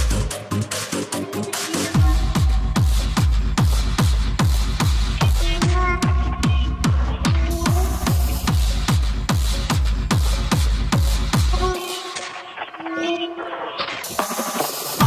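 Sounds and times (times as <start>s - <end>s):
kick drum: 1.9s - 11.8s.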